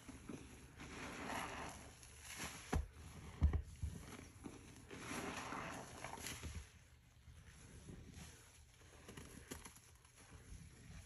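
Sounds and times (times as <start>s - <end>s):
crackling suds: 0.0s - 11.0s
wet sponge squelching: 0.0s - 11.0s.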